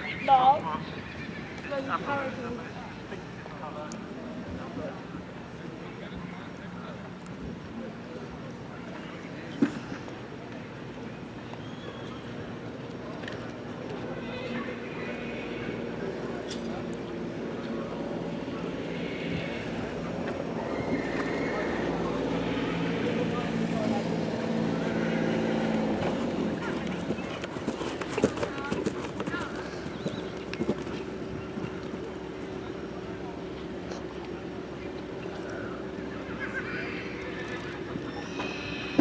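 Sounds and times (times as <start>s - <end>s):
horse hoofbeats on grass: 26.1s - 32.1s.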